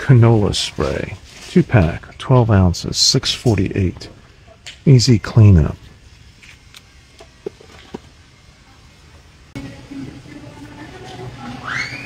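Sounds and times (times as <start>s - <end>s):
child squealing: 11.6s - 12.0s.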